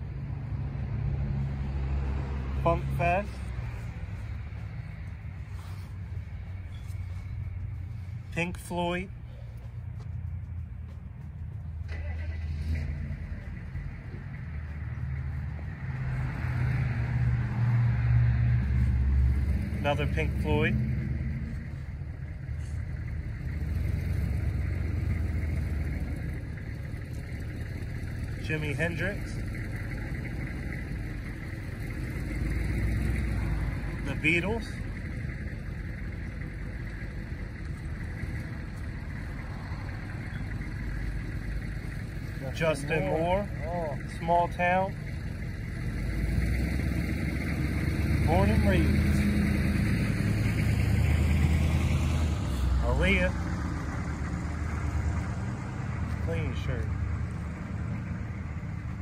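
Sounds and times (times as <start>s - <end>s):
engine humming: 0.0s - 59.0s.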